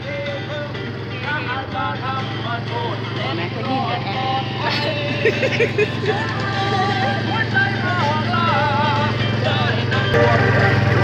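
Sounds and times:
music with wavering singing: 0:00.0 - 0:11.0
quad bike engine running: 0:00.0 - 0:11.0.

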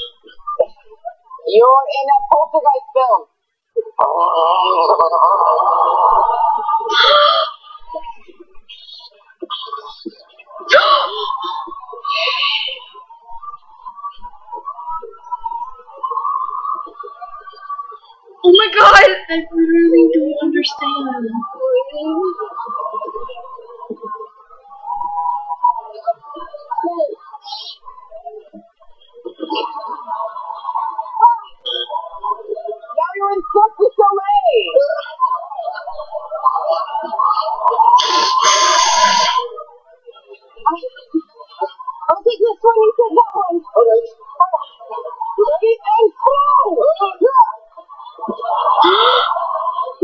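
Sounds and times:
muffled tv audio from laptop speaker: 0:00.0 - 0:50.0
performers' voices: 0:03.8 - 0:39.7.

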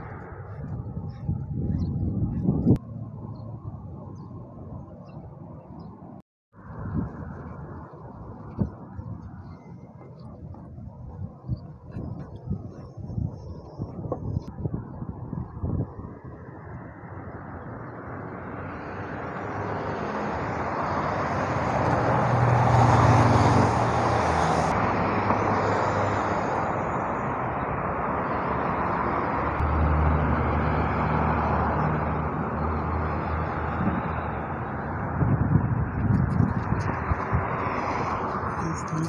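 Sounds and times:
cars passing on road: 0:00.0 - 0:39.0.

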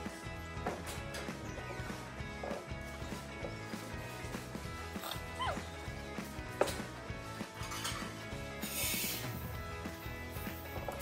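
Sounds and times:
background music with held tones: 0:00.0 - 0:11.0
burst of hiss: 0:08.6 - 0:09.4.

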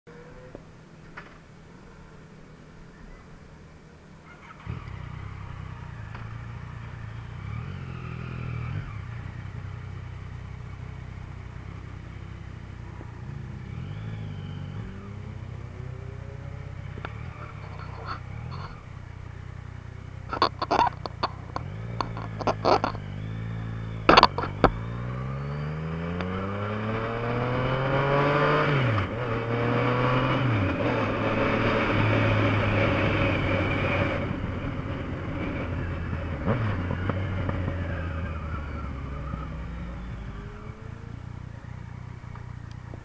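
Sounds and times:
motorcycle engine idling and revving: 0:00.1 - 0:43.0.

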